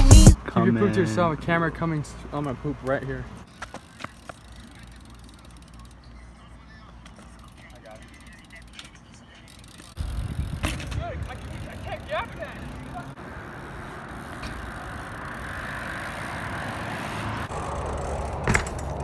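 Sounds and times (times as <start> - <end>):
bike tyres rolling on pavement: 1.4 - 19.0
bike grinding along metal rail: 2.1 - 6.1, 7.4 - 19.0.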